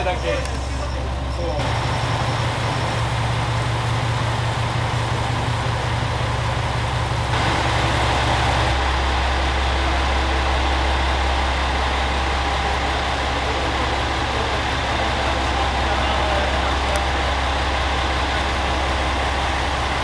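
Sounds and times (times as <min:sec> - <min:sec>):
diesel railcar engine idling: 0:00.0 - 0:20.0.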